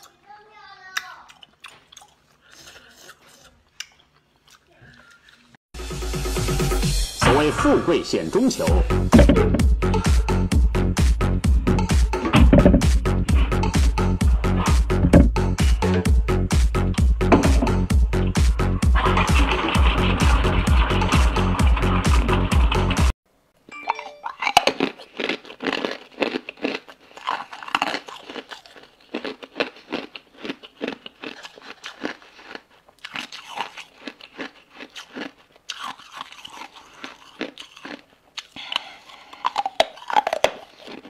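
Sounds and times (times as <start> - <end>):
electronic dance music: 5.8 - 11.2
person crunching ice: 24.6 - 41.0.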